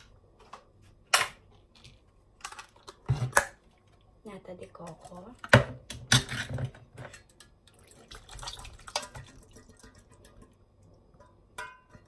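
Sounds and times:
kitchen items clicking and knocking: 0:04.8 - 0:07.5.

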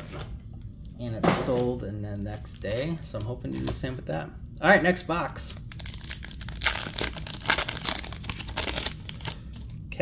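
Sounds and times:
wrapper tearing and crinkling: 0:05.5 - 0:09.7.

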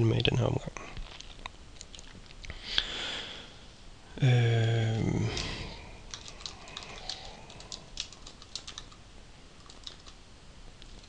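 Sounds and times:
computer keyboard typing: 0:05.3 - 0:09.0, 0:09.6 - 0:10.2.

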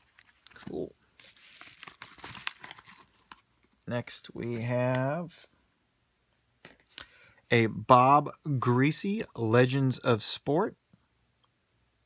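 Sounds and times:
paper mailer rustling and crinkling: 0:00.0 - 0:03.8.

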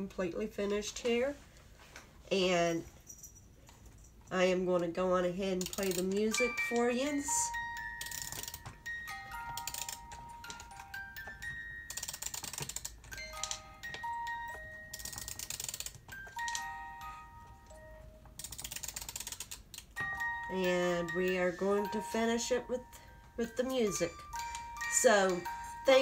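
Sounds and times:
rapid ratchet clicking: 0:05.6 - 0:06.2, 0:08.0 - 0:08.6, 0:09.6 - 0:10.0, 0:11.9 - 0:13.5, 0:15.0 - 0:16.0, 0:18.4 - 0:19.9
music box plucked bell-like notes: 0:06.0 - 0:12.3, 0:12.9 - 0:18.4, 0:20.0 - 0:26.0.

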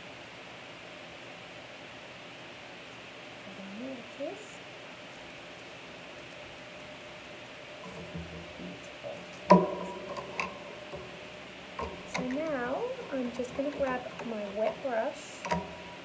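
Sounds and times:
person speaking: 0:11.9 - 0:15.5.

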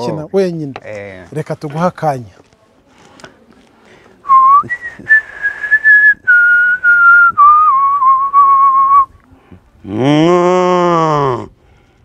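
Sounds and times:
man whistling: 0:04.3 - 0:09.1.

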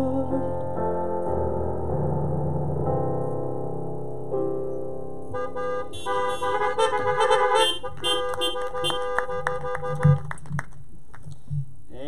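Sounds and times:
keyboard chord: 0:00.0 - 0:10.1
car horns honking: 0:05.3 - 0:10.4.

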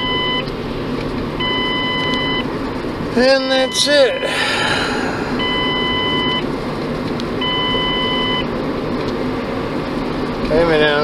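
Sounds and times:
dashboard warning chime beep: 0:00.0 - 0:00.5, 0:01.4 - 0:02.5, 0:03.4 - 0:04.3, 0:05.4 - 0:06.5, 0:07.4 - 0:08.5
road noise: 0:00.0 - 0:11.0.

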